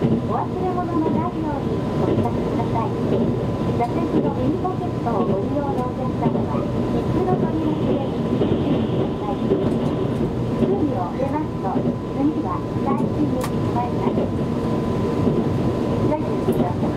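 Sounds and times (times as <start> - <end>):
train wheels rumbling on rails: 0.0 - 16.9.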